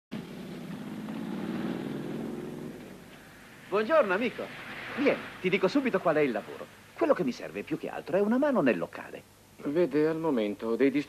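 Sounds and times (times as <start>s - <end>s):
vehicle engine humming: 0.1s - 7.8s.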